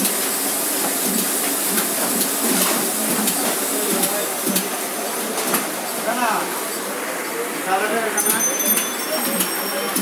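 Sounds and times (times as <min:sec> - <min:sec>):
printing press hiss and rumble: 0:00.0 - 0:10.0.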